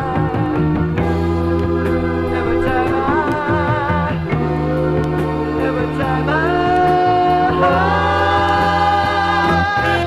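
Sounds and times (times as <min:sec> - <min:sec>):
steady bass: 0:00.0 - 0:10.0
voices singing in harmony: 0:00.0 - 0:10.0.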